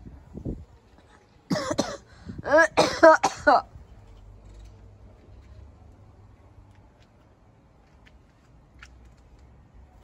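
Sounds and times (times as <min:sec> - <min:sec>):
person coughing: 0:01.5 - 0:03.7.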